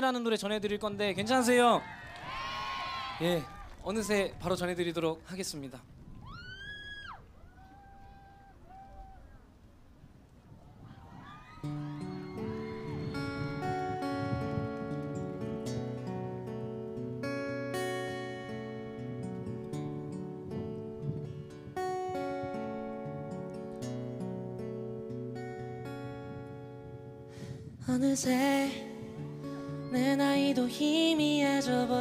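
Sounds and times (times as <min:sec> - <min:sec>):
faint crowd noise: 0:00.0 - 0:17.0
acoustic guitar strumming: 0:11.6 - 0:32.0.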